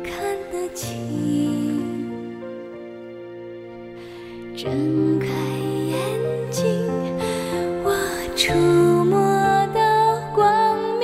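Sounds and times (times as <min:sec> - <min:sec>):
slow sad background music: 0:00.0 - 0:11.0.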